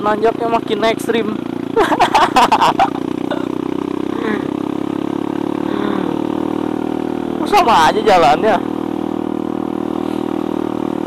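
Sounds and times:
motorcycle engine running under load: 0.0s - 11.0s.

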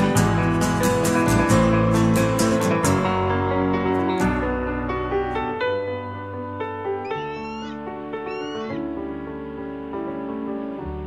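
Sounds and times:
slow piano music: 0.0s - 11.0s
high wavering calls: 7.1s - 8.8s.

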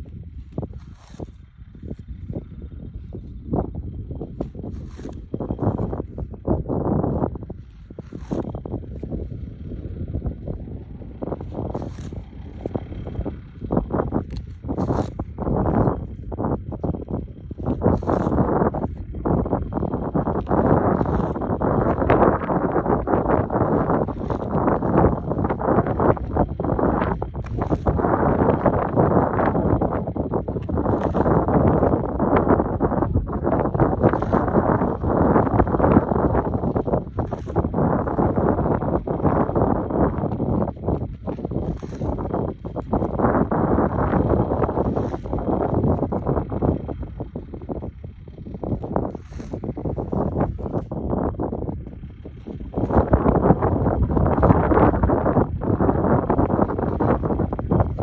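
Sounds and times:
scraper scraping soil: 0.0s - 9.9s, 10.6s - 46.4s, 48.7s - 58.0s
wind buffeting microphone: 0.0s - 58.0s.

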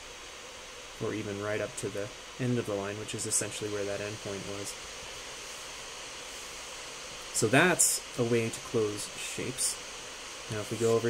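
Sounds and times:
room and microphone hiss: 0.0s - 11.0s.

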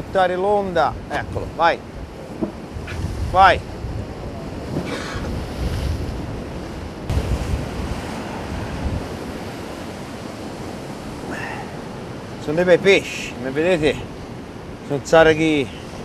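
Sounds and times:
wind buffeting microphone: 0.0s - 12.9s
surf breaking over rocks: 4.2s - 14.7s.

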